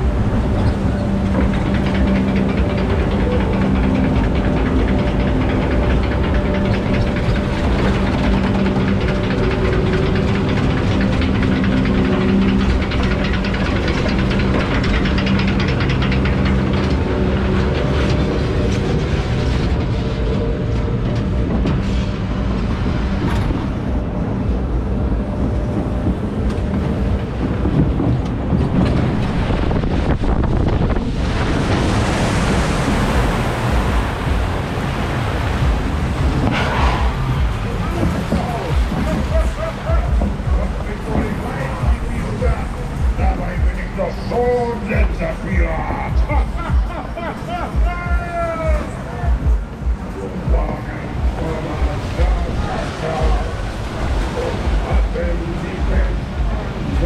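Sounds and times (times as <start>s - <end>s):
low lift hum: 0.0s - 57.0s
mechanical rumble and clatter: 0.0s - 57.0s
loud rush of water: 29.0s - 57.0s.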